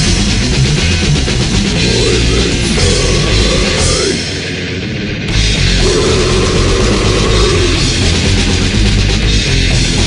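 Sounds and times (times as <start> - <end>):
distorted electric guitars: 0.0 - 10.0
drums: 0.0 - 10.0.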